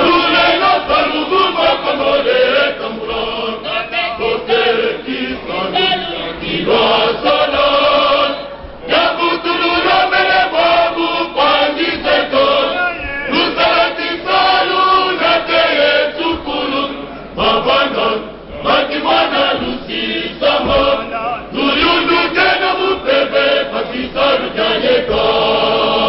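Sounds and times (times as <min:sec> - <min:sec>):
male choir singing: 0:00.0 - 0:26.0.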